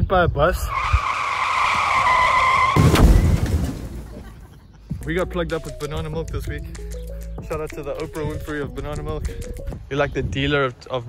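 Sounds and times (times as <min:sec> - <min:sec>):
tyre screech: 0:00.6 - 0:03.3
heavy crash thump: 0:02.6 - 0:04.3.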